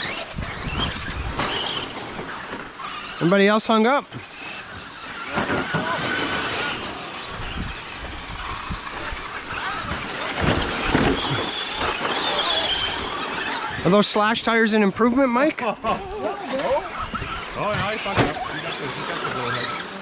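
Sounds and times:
tyres scrabbling on dirt: 0.0s - 14.7s
rc truck motors whining: 0.0s - 20.0s.

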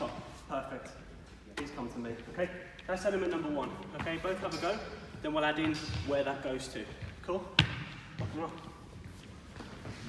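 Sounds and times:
men speaking: 0.0s - 7.6s.

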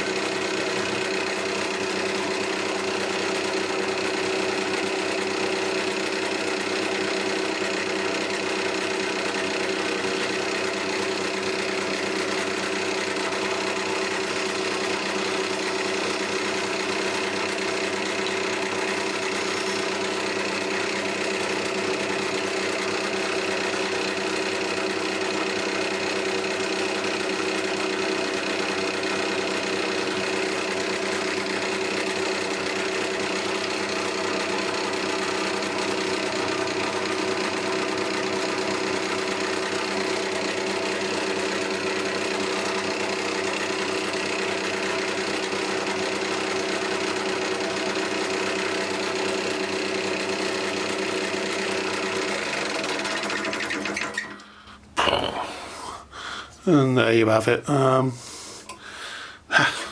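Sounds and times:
chisel cutting spinning wood: 0.0s - 54.4s
wood lathe humming and rattling: 0.0s - 54.8s.

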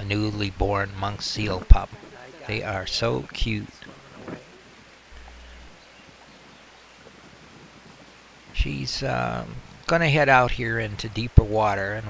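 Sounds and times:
wind on microphone: 1.5s - 8.8s
small waves breaking over rocks: 1.6s - 2.7s, 3.6s - 8.6s.

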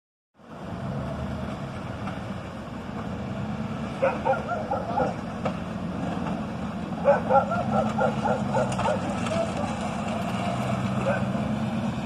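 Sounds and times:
vehicle engines idling: 0.4s - 12.0s.

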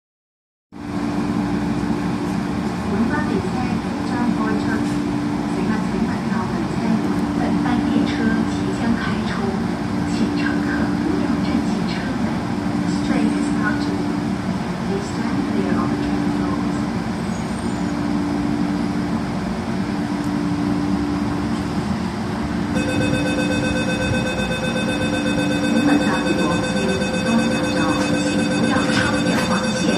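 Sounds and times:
electric train humming: 0.8s - 29.9s
people talking: 2.9s - 14.1s, 14.9s - 16.8s, 22.8s - 29.9s.

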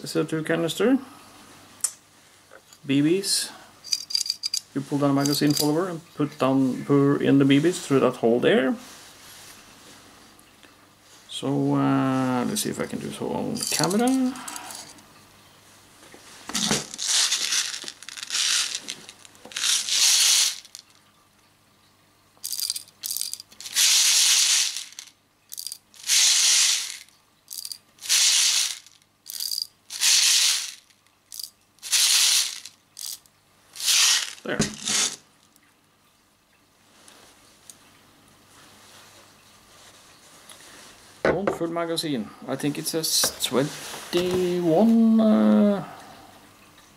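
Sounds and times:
metal bbs rattling: 3.8s - 5.8s, 13.6s - 15.0s, 16.6s - 21.0s, 22.4s - 35.2s.

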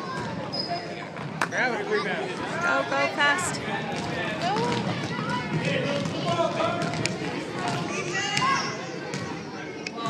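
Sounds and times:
spectators' voices echoing: 0.0s - 10.0s.

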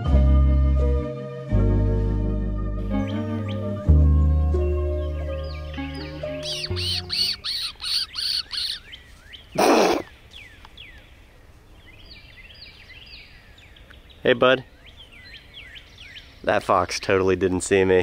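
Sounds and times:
background music: 0.0s - 7.5s
bird chirps: 2.8s - 16.9s
bird repeating high call: 5.4s - 9.0s.

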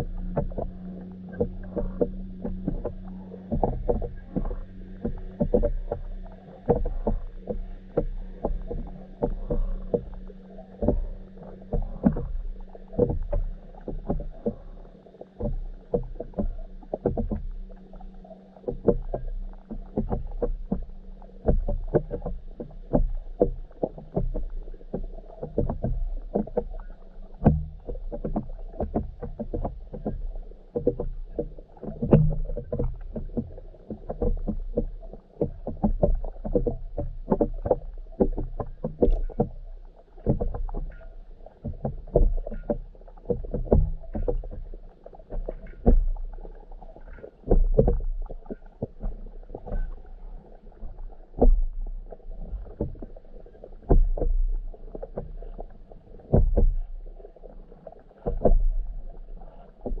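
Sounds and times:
muffled underwater rumble: 0.0s - 60.0s
soft knocks and clicks: 0.0s - 60.0s.

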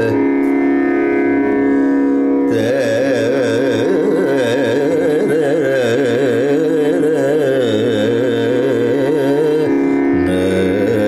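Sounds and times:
steady musical drone: 0.0s - 11.0s.

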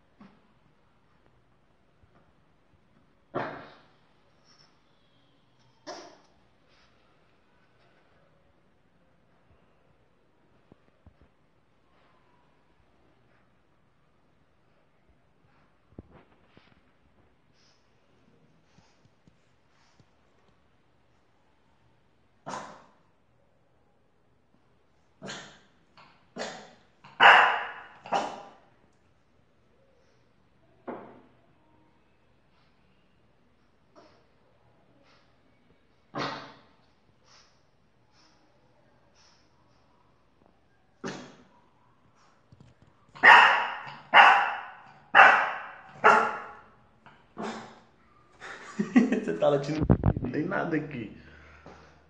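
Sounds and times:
dog barking: 22.4s - 23.0s, 26.4s - 28.6s, 43.2s - 46.7s.

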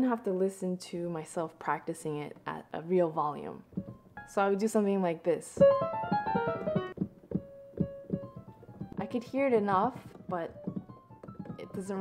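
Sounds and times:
piano notes: 3.7s - 4.5s, 5.6s - 12.0s.

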